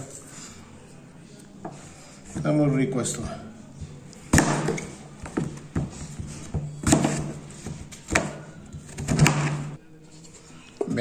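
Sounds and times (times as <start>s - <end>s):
knife cutting apples on board: 4.2s - 9.8s.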